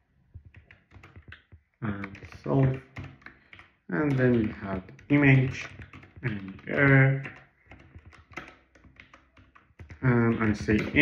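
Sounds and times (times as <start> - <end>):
computer keyboard typing: 0.3 - 11.0.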